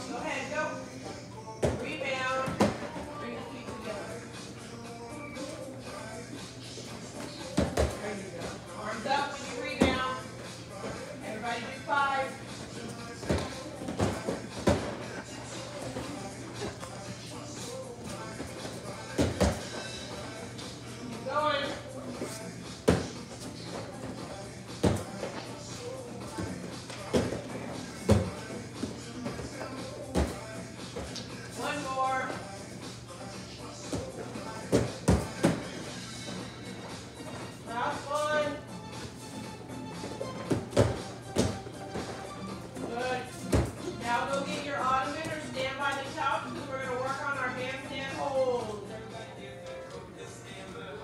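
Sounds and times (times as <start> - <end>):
music: 0.0 - 51.0
dull thuds on gym mats: 7.5 - 8.0, 13.2 - 15.2, 19.0 - 19.8, 22.8 - 23.2, 24.8 - 25.3, 26.4 - 31.2, 33.9 - 35.8, 40.4 - 42.2, 42.8 - 43.9.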